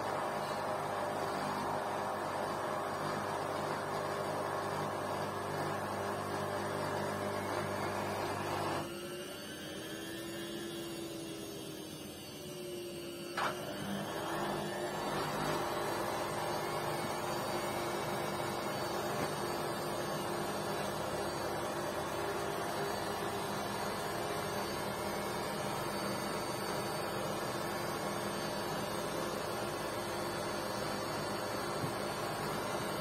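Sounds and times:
gliding whine of washing machine: 0:00.0 - 0:33.0.

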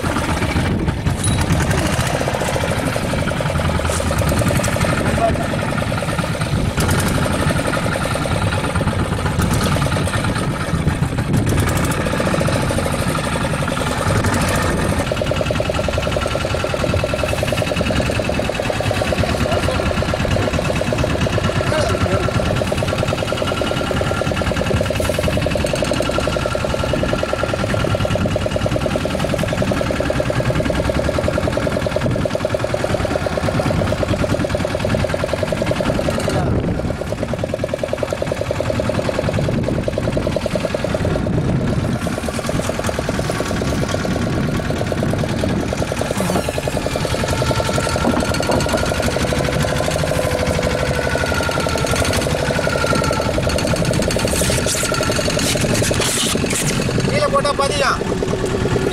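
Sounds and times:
boat engine running: 0:00.0 - 0:58.9.

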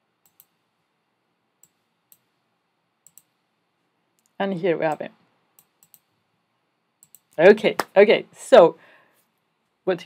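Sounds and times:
computer clicks: 0:00.2 - 0:00.6, 0:01.6 - 0:02.3, 0:03.0 - 0:03.4, 0:05.6 - 0:06.1, 0:07.0 - 0:07.4.

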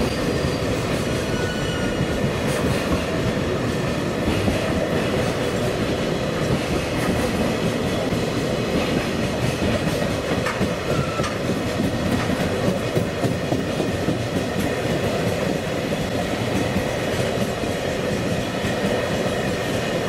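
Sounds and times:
train wagons rumbling past: 0:00.0 - 0:20.0
wheels clacking over rail joints: 0:00.0 - 0:20.0.

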